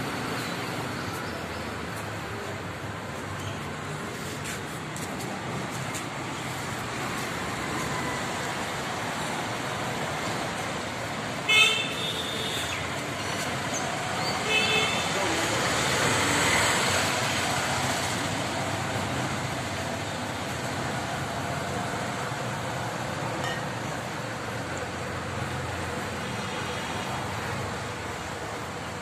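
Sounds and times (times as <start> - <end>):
road traffic: 0.0 - 29.0
vehicle horn toots: 11.5 - 12.6.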